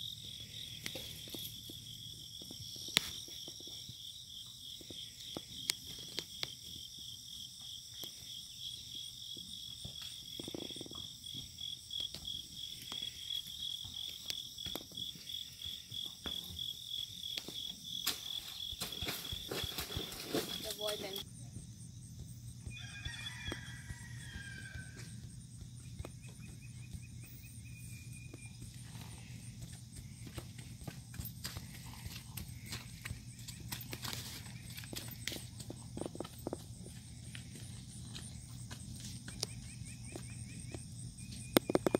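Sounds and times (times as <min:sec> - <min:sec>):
horse hoofbeats on dirt: 0:00.0 - 0:41.9
pulsing insect chorus: 0:00.0 - 0:41.9.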